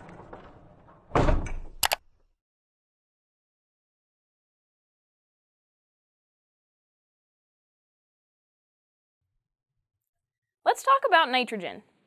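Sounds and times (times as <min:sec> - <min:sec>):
sharp clicks: 0:01.8 - 0:02.0.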